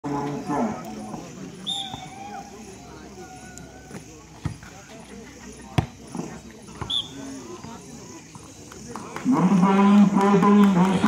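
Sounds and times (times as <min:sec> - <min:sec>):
referee's whistle blast: 0:01.6 - 0:02.1, 0:06.9 - 0:07.2.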